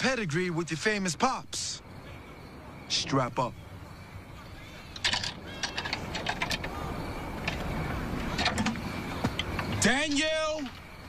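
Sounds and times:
buckles clicking and rattling: 4.9s - 6.8s, 7.4s - 9.9s.

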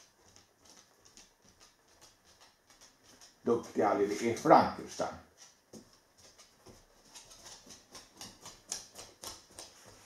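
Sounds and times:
dog claws clicking on wooden floor: 0.0s - 4.5s, 5.3s - 10.0s.

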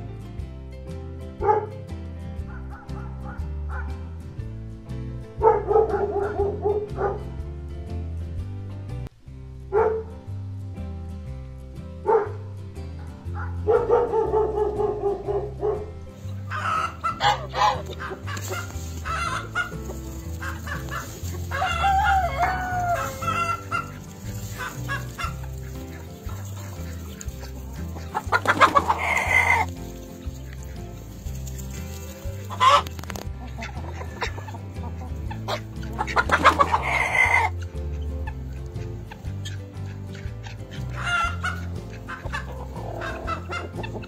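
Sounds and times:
faint background music: 0.0s - 44.0s
hens clucking: 13.3s - 44.0s
rooster crowing: 20.7s - 23.8s.

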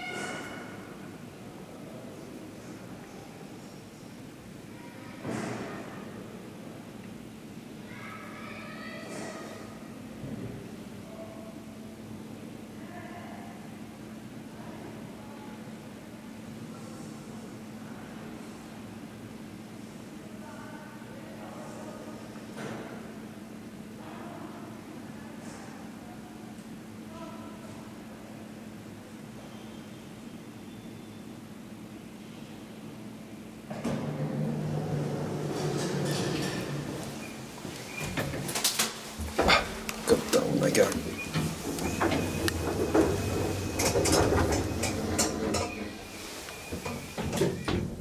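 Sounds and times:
faint high whine: 29.4s - 31.6s
elevator machinery hum: 30.0s - 48.0s.

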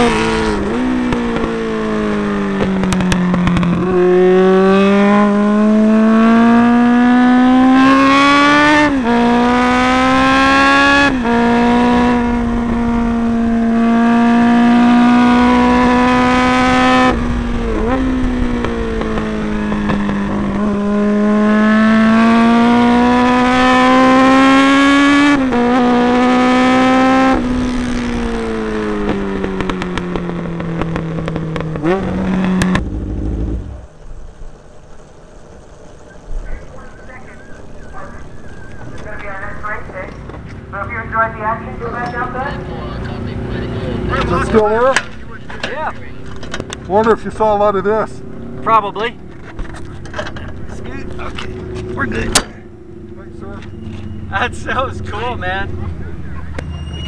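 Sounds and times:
racing motorcycle engine revving: 0.0s - 34.0s, 36.0s - 57.0s.

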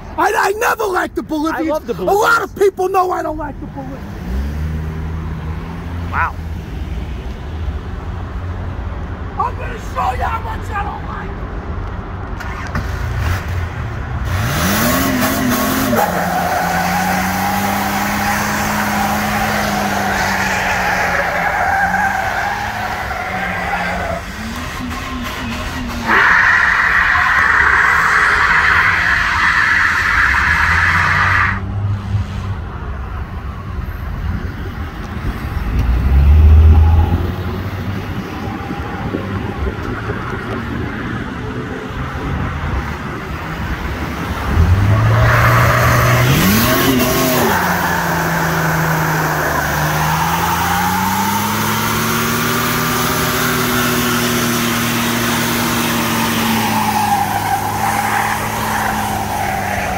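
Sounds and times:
engine revving: 12.4s - 32.0s, 35.7s - 39.1s, 44.4s - 59.9s
tyres squealing: 15.7s - 31.6s, 44.9s - 59.9s.

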